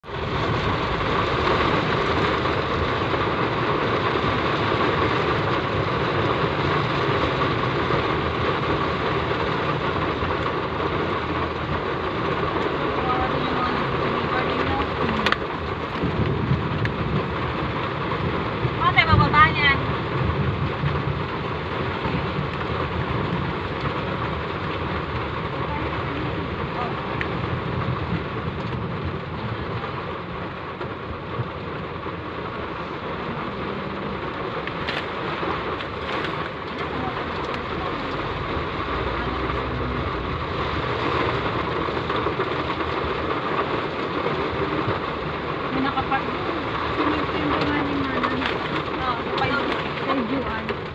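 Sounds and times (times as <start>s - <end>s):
heavy rain on a car: 0.0s - 50.9s.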